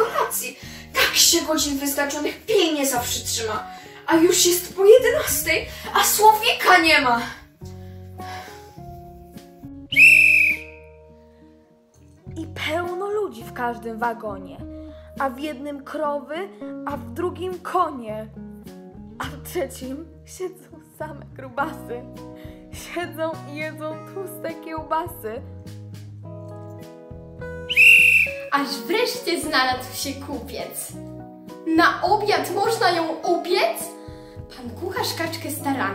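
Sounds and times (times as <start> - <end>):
soft background music: 0.0 - 35.9
shrill whistle blast: 9.9 - 11.0, 27.7 - 28.5.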